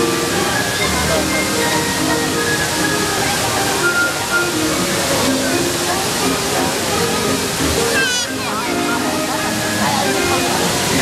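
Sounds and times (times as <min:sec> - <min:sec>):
crowd talking: 0:00.0 - 0:11.0
fountain water jets splashing: 0:00.0 - 0:11.0.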